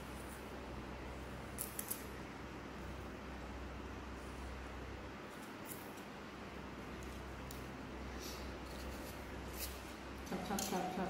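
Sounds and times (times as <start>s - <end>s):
faint background hum: 0.0s - 11.0s.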